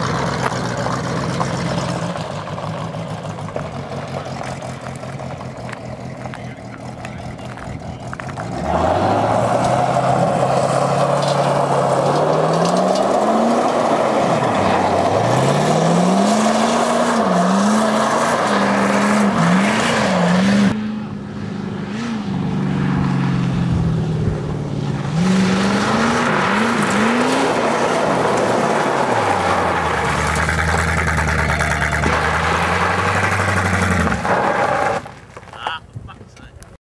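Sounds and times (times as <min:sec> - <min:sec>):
car engine revving: 0:00.0 - 0:35.2
tyre noise on dirt road: 0:00.0 - 0:36.8.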